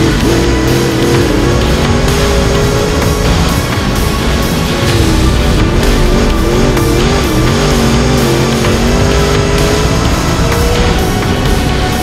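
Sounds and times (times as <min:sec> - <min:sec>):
race car engine running hard: 0:00.0 - 0:12.0.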